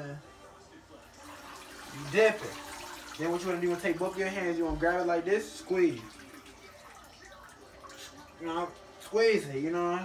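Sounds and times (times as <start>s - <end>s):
water dripping into sink: 1.5s - 8.9s.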